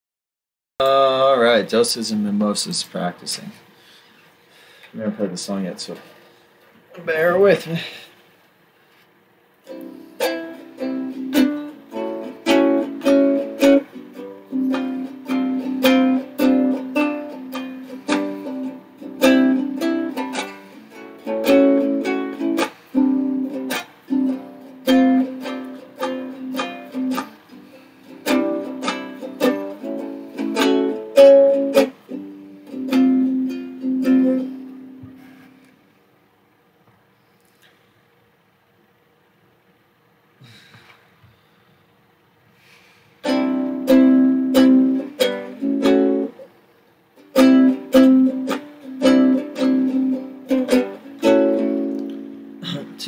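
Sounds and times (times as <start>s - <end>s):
acoustic string instrument strumming: 9.6s - 35.7s, 43.2s - 46.6s, 47.2s - 53.0s.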